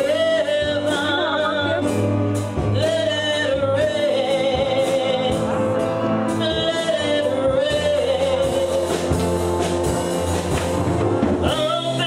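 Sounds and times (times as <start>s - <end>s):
gospel group singing: 0.0s - 12.0s
low bass notes: 0.0s - 12.0s.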